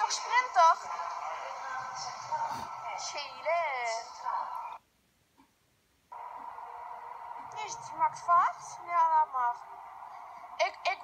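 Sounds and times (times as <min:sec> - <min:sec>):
steady hum: 0:05.5 - 0:11.0.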